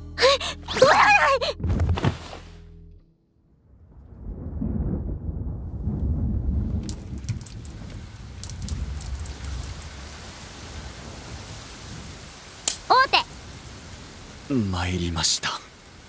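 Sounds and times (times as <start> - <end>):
thunder rumbling: 3.6 - 14.9
rain hissing: 4.3 - 16.0.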